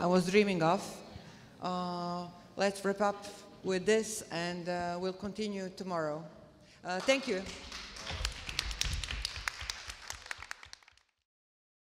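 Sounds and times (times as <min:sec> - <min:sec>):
audience applauding: 0:07.0 - 0:11.2.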